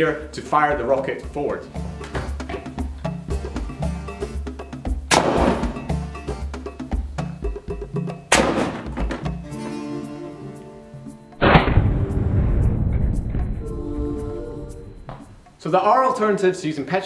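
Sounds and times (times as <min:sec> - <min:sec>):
background music with a beat: 0:00.0 - 0:15.6
air rocket launcher blast: 0:11.4 - 0:13.5.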